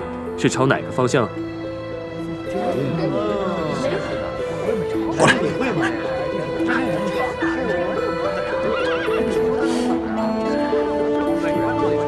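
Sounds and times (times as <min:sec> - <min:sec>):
background music with held notes: 0:00.0 - 0:12.0
horse whinnying: 0:07.3 - 0:09.7.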